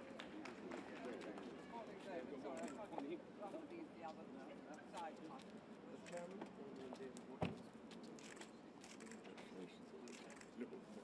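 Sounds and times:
murmur of people talking: 0.0 - 11.0.

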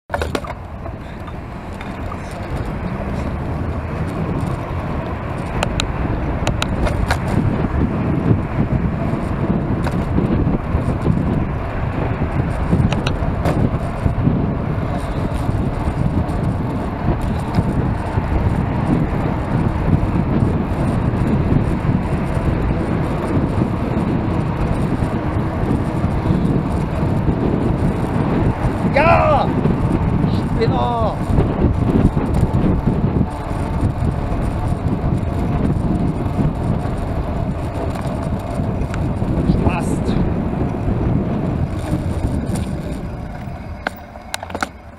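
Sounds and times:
passing car traffic: 0.1 - 44.9
wind rushing over microphone: 0.1 - 44.9.

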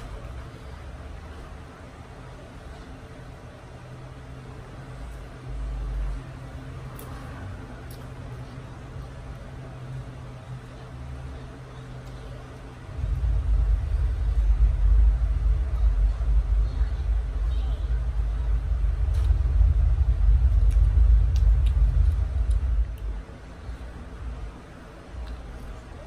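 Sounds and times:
loud low rumble: 12.7 - 25.0.

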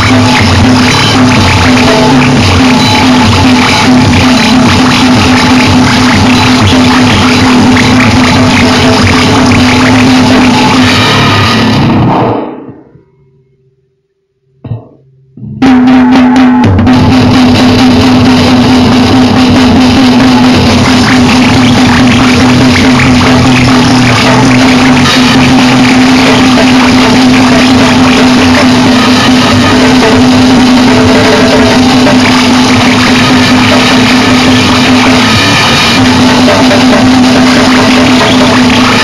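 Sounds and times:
wall of distorted noise: 0.0 - 39.0.

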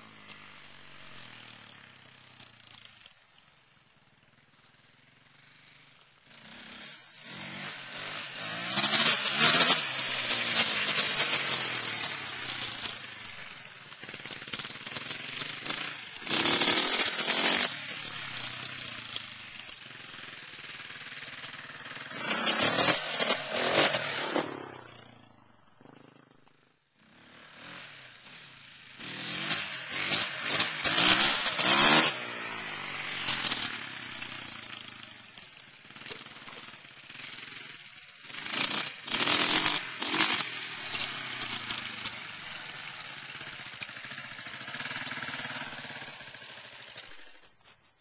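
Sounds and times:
dirt bike engine revving: 5.2 - 47.5.

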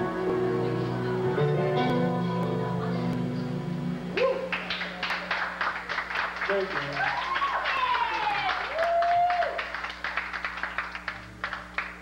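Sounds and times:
audience applauding: 4.4 - 12.0
shouted cheers: 6.9 - 9.7.

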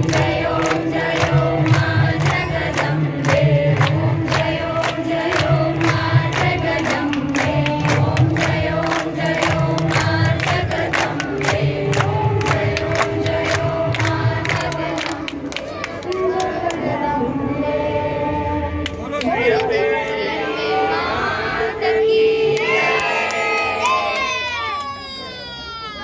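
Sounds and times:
rhythmic hand clapping: 0.0 - 17.0
women singing in unison: 0.0 - 23.4.

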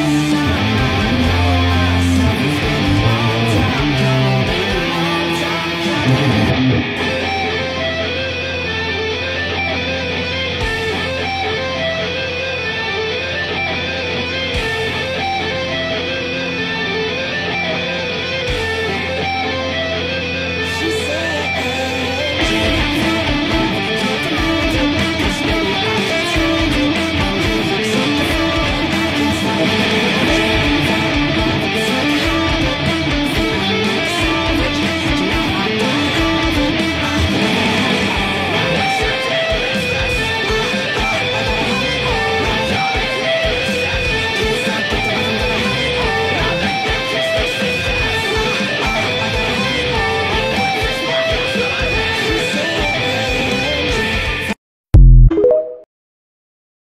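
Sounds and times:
fast electric guitar lines: 0.0 - 54.6
rock band playing: 0.0 - 55.1.

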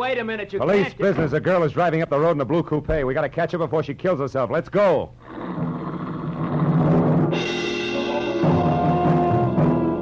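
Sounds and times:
timpani rolling: 5.3 - 10.0
orchestral music: 7.3 - 10.0.

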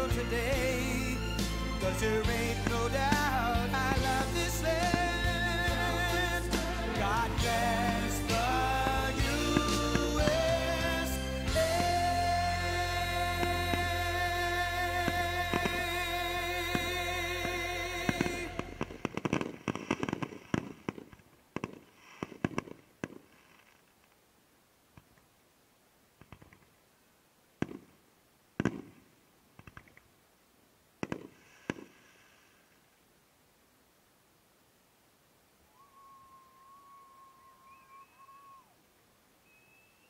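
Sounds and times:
fireworks bangs and cracks: 0.0 - 23.7, 28.6 - 29.0, 31.0 - 32.0
faint steady hiss: 0.0 - 40.0
faint whistle-like tone: 35.6 - 38.8, 39.4 - 40.0.

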